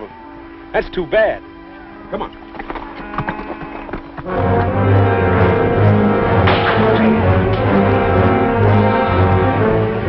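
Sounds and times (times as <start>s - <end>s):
film music score: 0.0s - 10.0s
held low note: 0.0s - 10.0s
horse hooves clopping: 2.3s - 4.8s.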